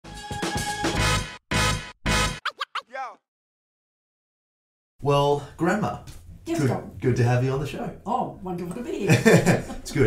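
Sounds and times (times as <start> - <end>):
record scratch pitch swoops: 1.6 - 3.2.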